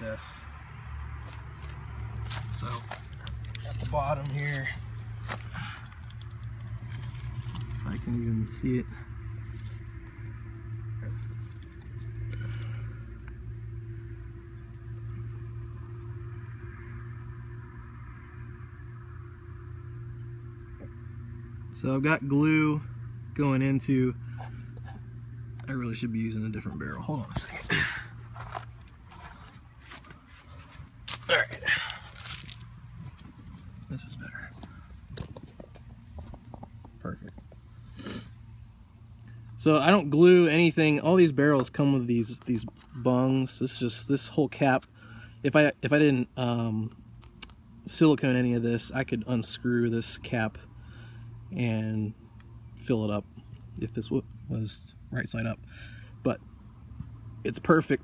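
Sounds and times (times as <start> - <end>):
steady low hum: 0.0 - 58.0
rustling and light scrapes: 26.6 - 31.3, 32.0 - 38.3.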